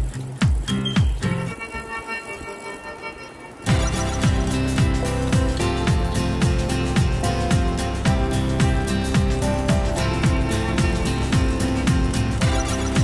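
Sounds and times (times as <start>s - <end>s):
dance music with kick drum: 0.0s - 1.4s, 3.7s - 13.0s.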